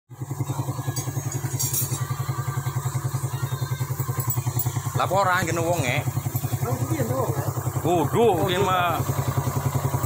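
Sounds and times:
motorcycle engine idling: 0.1 - 10.0.

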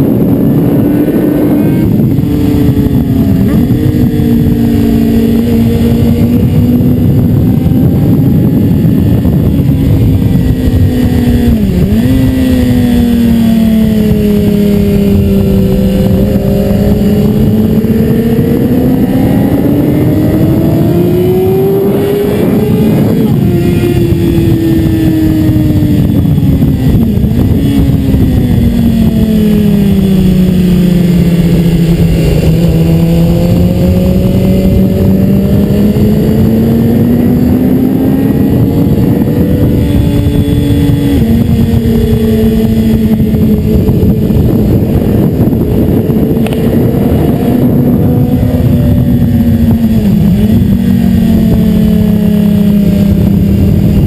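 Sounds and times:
motorcycle engine accelerating: 0.0 - 54.0
wind noise: 0.0 - 54.0.

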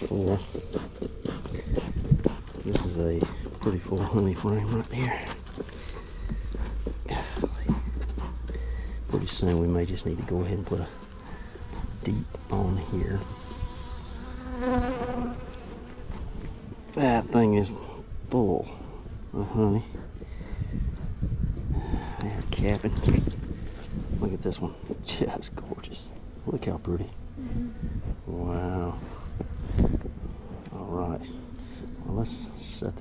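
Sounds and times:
bees buzzing: 8.4 - 19.3
bee flying close by: 9.1 - 18.1.

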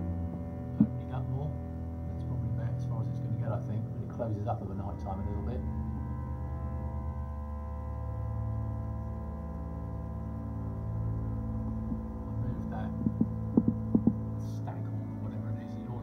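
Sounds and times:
aquarium equipment hum: 0.0 - 3.0, 3.7 - 16.0
low throbbing pulse: 0.0 - 16.0.

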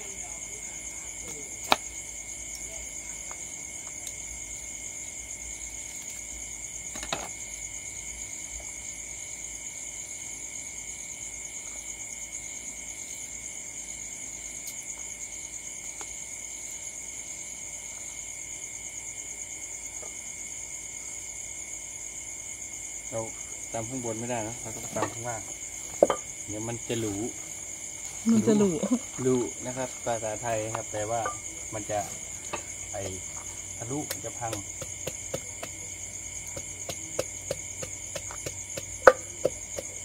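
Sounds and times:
crickets chirping: 0.0 - 40.0.

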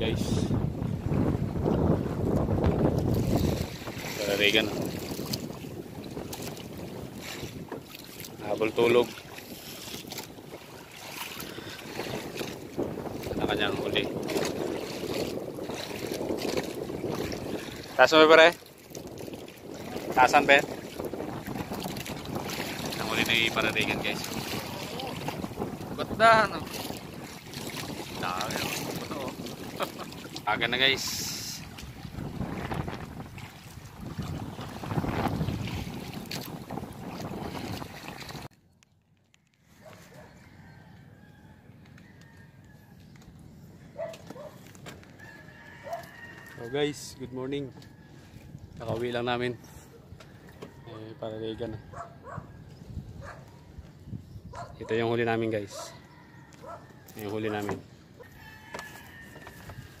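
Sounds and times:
water washing: 0.0 - 38.5
wind buffeting microphone: 0.0 - 38.5, 43.4 - 50.8, 51.7 - 58.3
distant rooster crowing: 39.8 - 43.2, 44.0 - 48.5, 50.2 - 52.6, 55.7 - 60.0.

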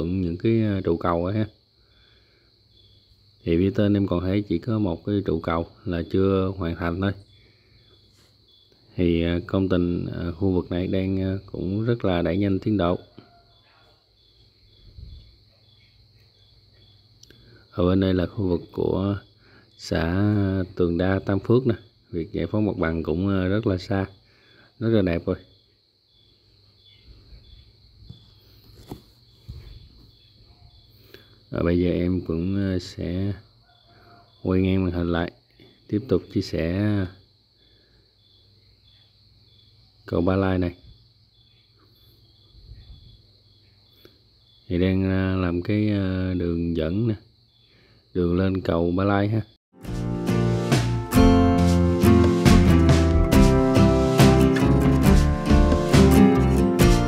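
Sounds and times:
faint cricket chirping: 0.0 - 49.6.

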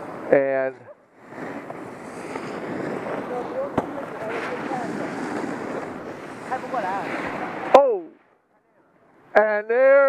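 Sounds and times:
wind on microphone: 0.0 - 8.2.

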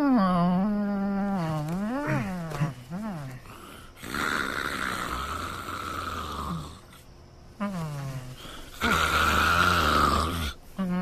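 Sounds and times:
man snoring loudly: 4.0 - 7.0, 8.7 - 10.6.

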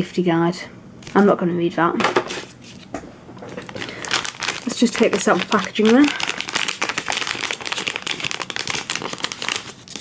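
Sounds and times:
packaging rustling clatter: 2.4 - 10.0
plastic bag crinkling: 3.4 - 10.0.

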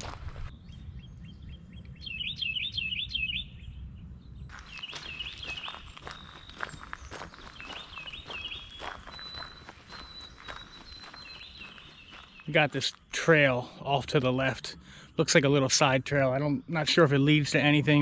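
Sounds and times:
footsteps on dirt trail: 0.0 - 0.5, 4.5 - 13.0
songbird singing: 0.0 - 18.0.

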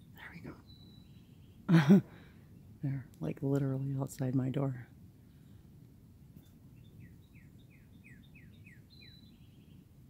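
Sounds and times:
low outdoor hum: 0.0 - 10.0.

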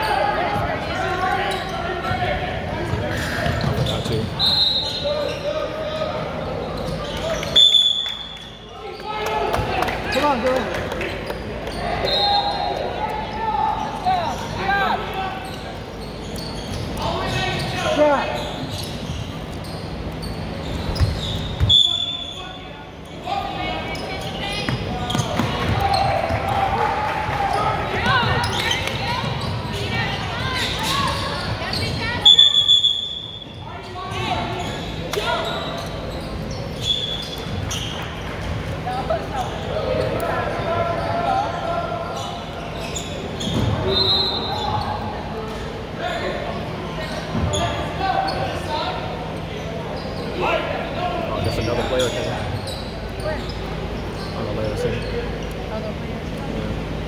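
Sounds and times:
referee whistle blast: 21.6 - 22.4, 32.2 - 33.4.

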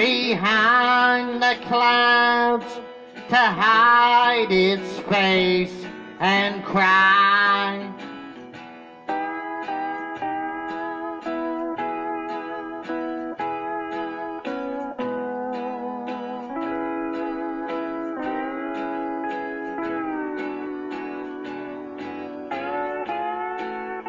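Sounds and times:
plucked guitar steady beat: 0.0 - 24.0
steel guitar sliding melody: 0.0 - 24.0.

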